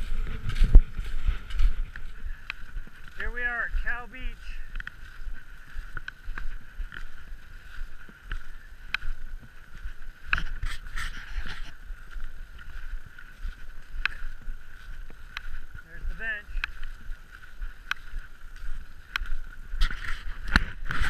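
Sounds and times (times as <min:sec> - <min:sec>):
low rumble on microphone: 0:00.0 - 0:03.8.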